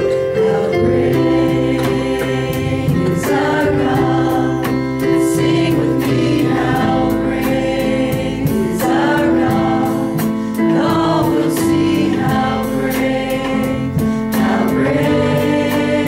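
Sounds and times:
instrumental backing with steady beat: 0:00.0 - 0:16.0
vocal group singing in harmony: 0:00.0 - 0:16.0.

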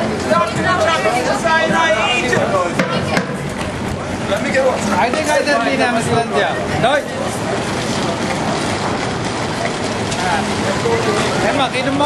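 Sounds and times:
faint voices talking: 0:00.0 - 0:12.0
rushing outdoor noise: 0:00.0 - 0:12.0.

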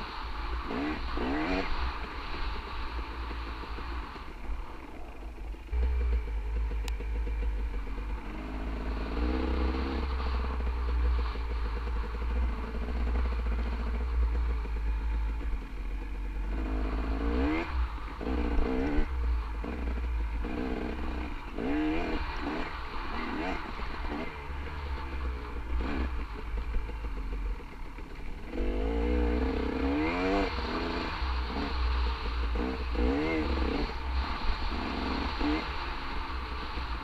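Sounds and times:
dirt bike engine running: 0:00.0 - 0:37.0.

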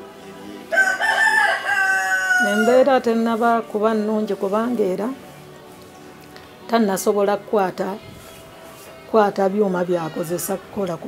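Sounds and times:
rooster crowing: 0:00.7 - 0:02.9.

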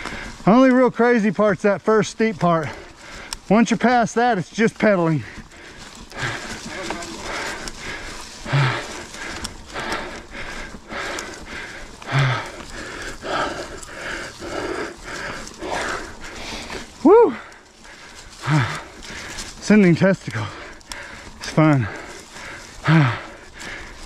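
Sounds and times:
person breathing hard: 0:00.0 - 0:00.5, 0:02.6 - 0:03.5, 0:05.1 - 0:19.6, 0:20.2 - 0:24.0
person grunting: 0:17.0 - 0:17.4.

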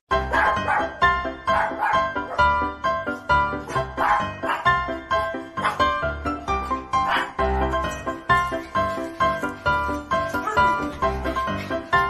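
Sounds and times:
background music: 0:00.1 - 0:12.0
puppies barking: 0:00.2 - 0:02.7, 0:03.6 - 0:06.2, 0:06.8 - 0:07.9, 0:10.2 - 0:12.0.

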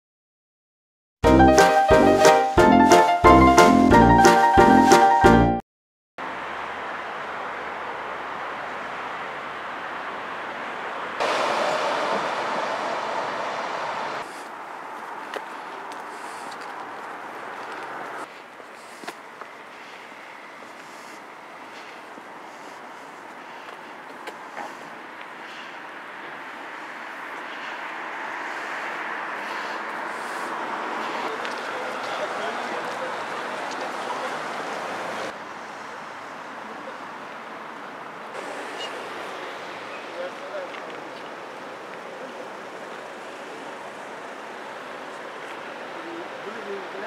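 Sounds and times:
distant road traffic: 0:06.2 - 0:47.0
vehicle noise: 0:06.2 - 0:47.0.

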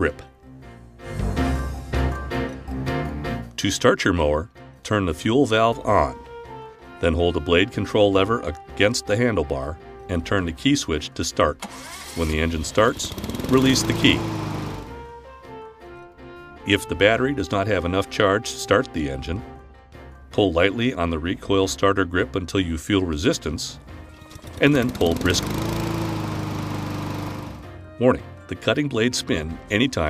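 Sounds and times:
soft background music: 0:00.0 - 0:30.0
lawn mower engine running: 0:11.6 - 0:15.0, 0:24.2 - 0:27.7
recoil pull start: 0:11.6 - 0:15.1, 0:24.1 - 0:27.7.

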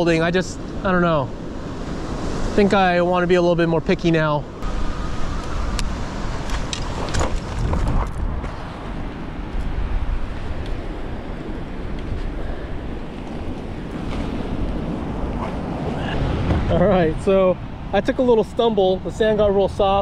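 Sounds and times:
ocean surf: 0:00.0 - 0:07.4, 0:08.6 - 0:20.0
wind buffeting microphone: 0:00.0 - 0:20.0.

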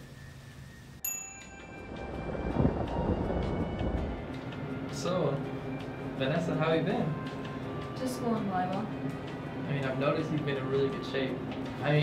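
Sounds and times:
music score of held tones: 0:00.0 - 0:12.0
rain: 0:01.6 - 0:08.7
thunder rumbling: 0:01.7 - 0:10.7.

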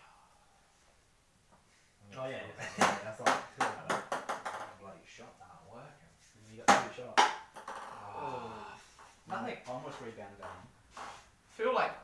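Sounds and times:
ping-pong ball bouncing: 0:02.8 - 0:04.8, 0:06.7 - 0:08.0.

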